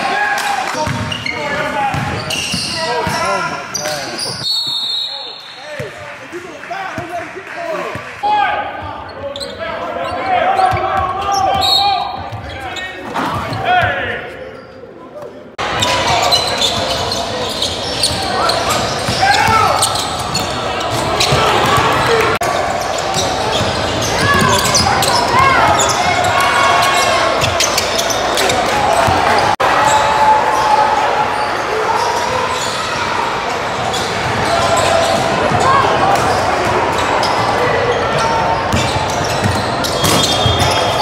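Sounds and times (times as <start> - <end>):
crowd din: 8.6 - 41.0
people calling out: 15.6 - 37.4.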